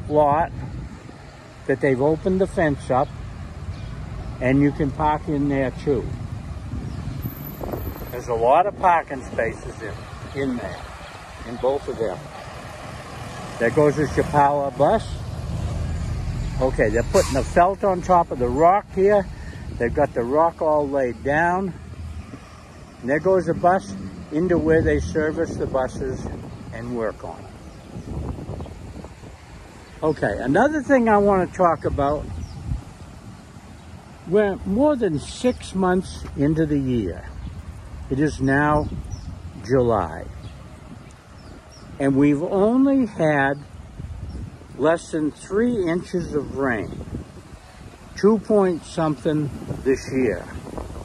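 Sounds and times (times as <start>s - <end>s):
wind buffeting microphone: 0.0s - 1.6s, 2.2s - 42.8s, 43.5s - 51.0s
low rumble of street traffic: 0.0s - 51.0s.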